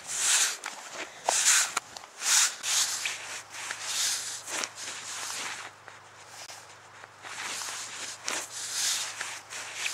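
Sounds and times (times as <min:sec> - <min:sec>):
push broom scraping snow: 0:00.0 - 0:05.7, 0:07.2 - 0:09.9.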